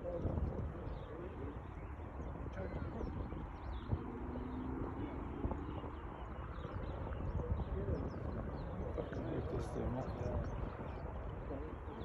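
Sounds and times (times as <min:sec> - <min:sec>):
birds chirping and calling: 0:00.0 - 0:12.0
wind rumbling on microphone: 0:00.0 - 0:12.0.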